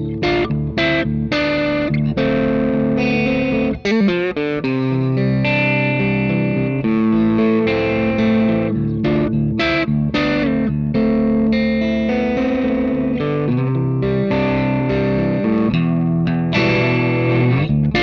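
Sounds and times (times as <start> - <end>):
overdriven electric guitar: 0.0 - 18.0.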